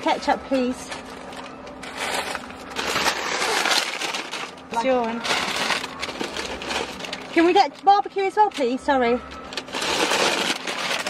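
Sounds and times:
paper bags rustling: 0.0s - 11.0s.

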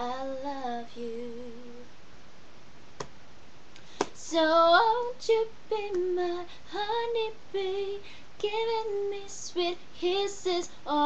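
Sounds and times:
faint room hiss: 0.0s - 11.0s.

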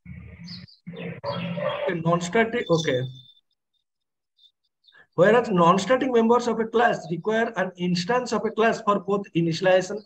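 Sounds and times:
indistinct speech: 0.9s - 3.2s.

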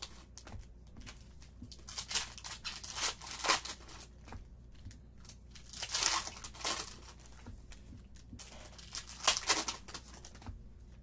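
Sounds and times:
trading cards rustling: 0.0s - 10.6s.

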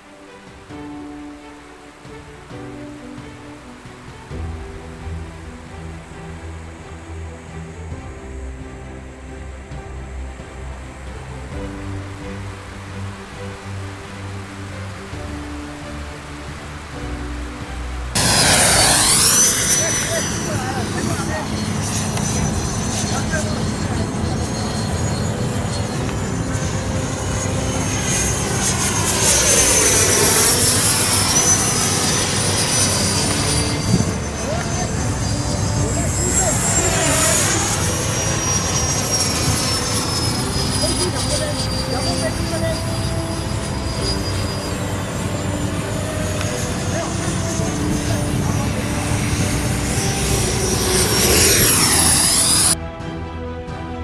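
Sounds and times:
model jet turbine whining: 18.1s - 52.8s.

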